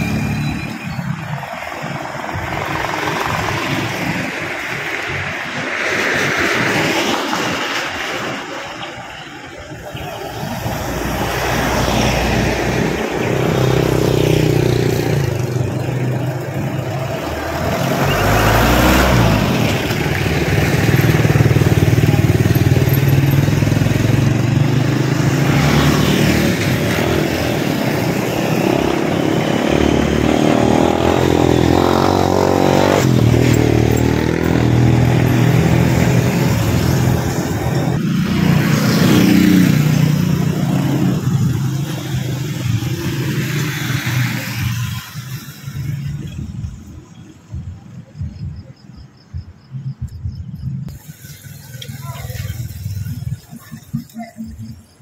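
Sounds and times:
vehicles passing by: 0.0s - 55.0s.

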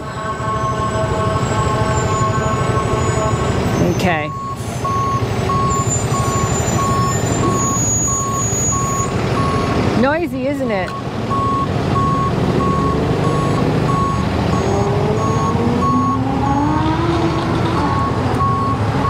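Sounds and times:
reversing alarm beeping: 0.0s - 9.8s, 10.8s - 17.1s, 17.9s - 19.0s
steady traffic: 0.0s - 19.0s.

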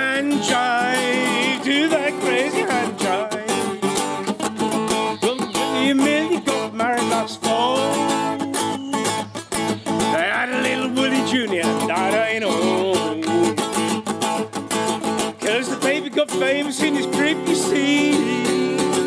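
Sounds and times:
man singing: 0.0s - 14.0s, 15.3s - 19.0s
acoustic guitar strumming: 0.0s - 19.0s.

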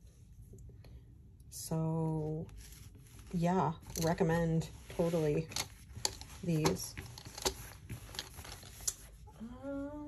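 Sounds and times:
wooden pencils clicking together: 5.5s - 9.0s.

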